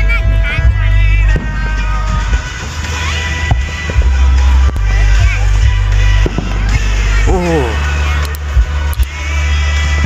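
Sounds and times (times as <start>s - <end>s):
background music: 0.0s - 10.0s
firework shells bursting: 1.3s - 9.2s.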